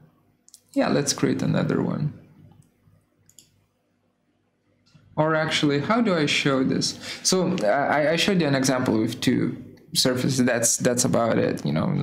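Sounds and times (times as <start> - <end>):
computer mouse clicks: 2.5 - 3.6.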